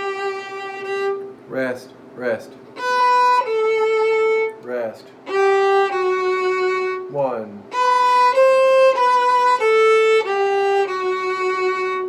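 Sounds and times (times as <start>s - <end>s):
solo violin long held notes: 0.0s - 1.3s, 2.8s - 12.0s.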